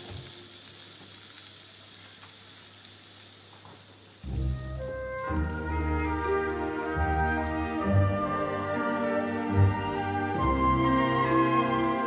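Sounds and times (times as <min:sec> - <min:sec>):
orchestra high hissing shimmer: 0:00.0 - 0:12.0.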